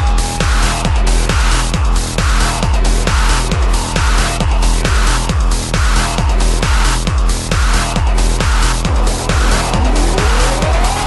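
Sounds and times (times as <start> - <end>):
pounding kick drum beat: 0.0 - 11.0
tone gliding upward in pitch: 8.9 - 11.0.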